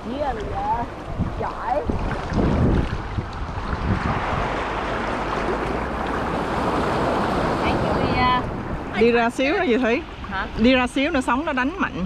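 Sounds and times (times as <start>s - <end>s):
seawater lapping around waders: 0.0s - 12.0s
wind rumbling on microphone: 0.0s - 12.0s.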